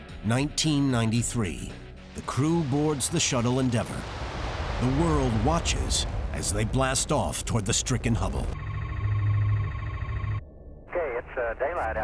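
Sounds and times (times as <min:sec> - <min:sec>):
low hum: 0:04.0 - 0:10.9
steady electronic tone: 0:08.5 - 0:10.9
radio speech: 0:10.9 - 0:12.0.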